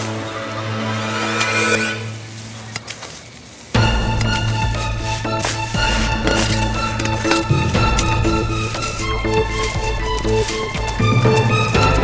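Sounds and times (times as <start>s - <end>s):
tense music with low drone: 0.0s - 2.5s, 3.8s - 12.0s
shovel scraping soil and leaves: 0.0s - 11.7s.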